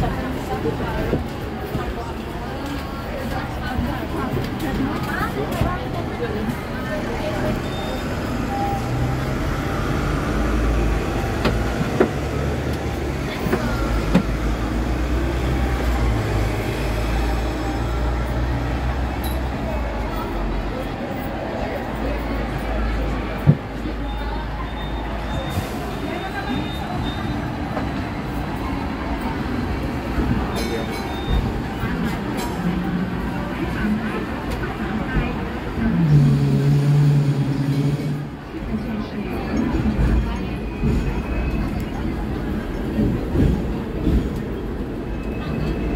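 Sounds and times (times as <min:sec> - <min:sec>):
tram rolling rumble: 0:00.0 - 0:45.9.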